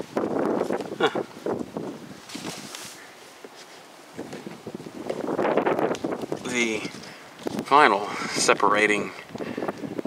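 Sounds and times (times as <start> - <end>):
wind on microphone: 0.0 - 3.2, 3.8 - 10.0
rustling and handling noise: 2.0 - 5.3.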